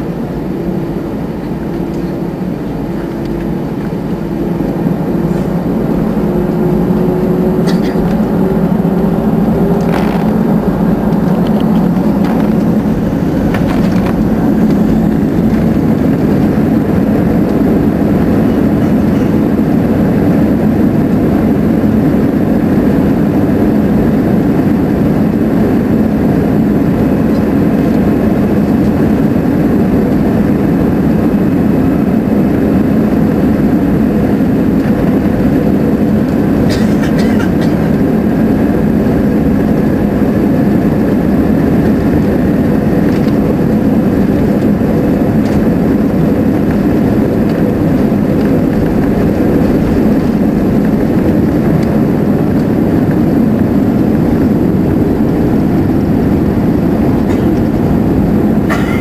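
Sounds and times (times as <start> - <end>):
jet engine hum in cabin: 0.0 - 59.0.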